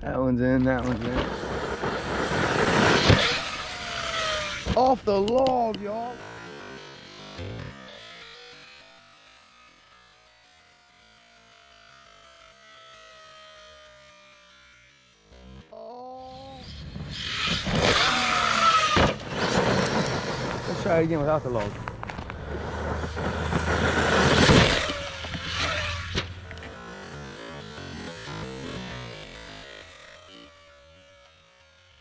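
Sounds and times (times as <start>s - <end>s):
electric motor whine: 0.0s - 32.0s
tyres on gravel: 16.8s - 29.6s
toy truck landing thump: 17.4s - 20.3s.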